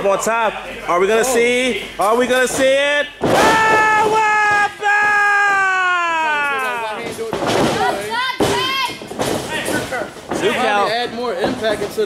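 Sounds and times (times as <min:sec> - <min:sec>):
excited yelling: 0:03.3 - 0:07.0
person shouting: 0:03.4 - 0:06.8.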